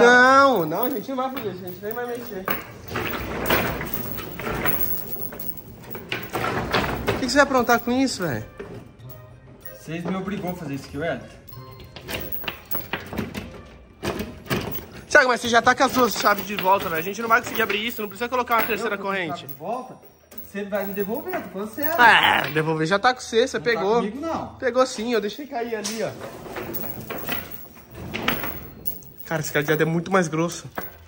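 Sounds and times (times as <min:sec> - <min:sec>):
padlock rattling: 0:00.0 - 0:22.6, 0:25.2 - 0:31.0
chain links clinking: 0:00.0 - 0:22.9, 0:25.0 - 0:31.0.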